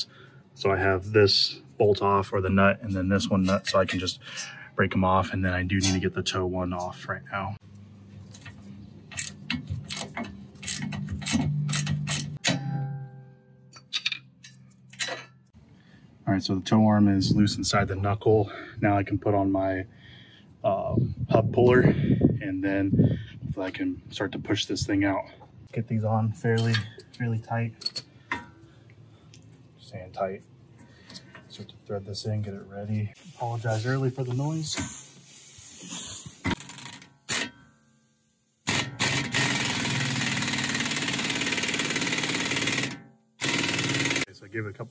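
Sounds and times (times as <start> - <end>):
ratchet wrench clicking: 9.1 - 12.4, 35.8 - 37.5, 38.7 - 44.3
rising air hiss: 33.2 - 36.5.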